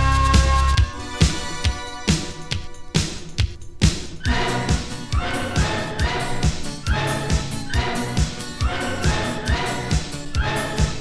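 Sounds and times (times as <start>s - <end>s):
steady kick drum: 0.0s - 4.9s.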